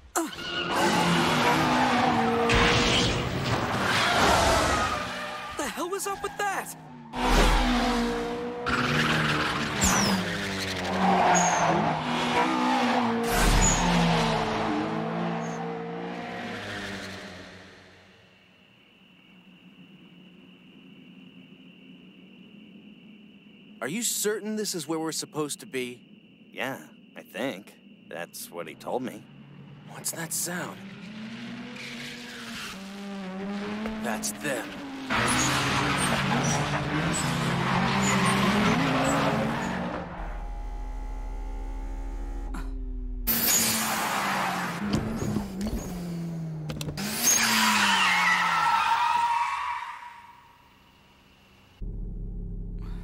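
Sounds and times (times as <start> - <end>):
tire squeals: 0.1 - 17.6, 31.1 - 32.9, 33.6 - 46.2, 47.0 - 50.8
race car engines at high revs: 0.4 - 5.6, 6.2 - 18.2, 29.3 - 50.4
tyre squeal: 8.7 - 12.7, 13.3 - 14.1, 35.1 - 40.6, 47.0 - 50.5.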